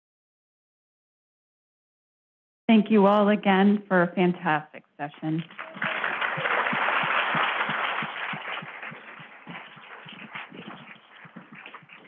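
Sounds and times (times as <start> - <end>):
audience applauding: 5.4 - 12.0.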